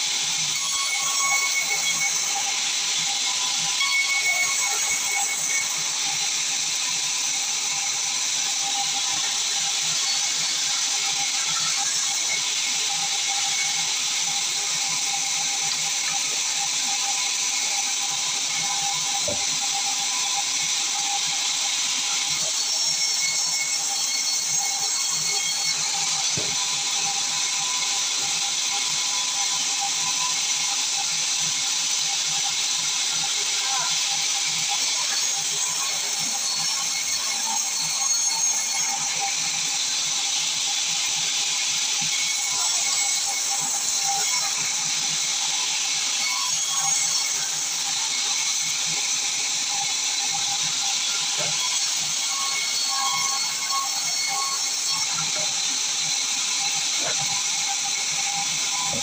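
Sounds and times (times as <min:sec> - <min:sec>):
band saw cutting timber: 0:00.0 - 0:59.0.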